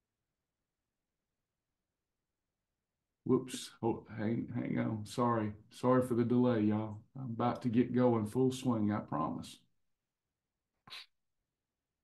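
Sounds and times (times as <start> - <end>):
man sniffing through nose: 10.9 - 11.1.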